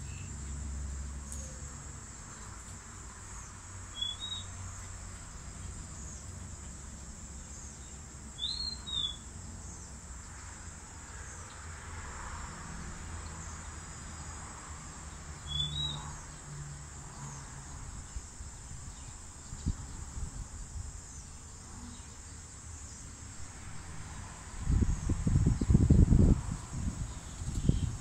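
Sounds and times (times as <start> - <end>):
insects droning: 0.0 - 28.0
bird chirping: 3.9 - 4.6, 7.5 - 9.8, 15.4 - 16.0.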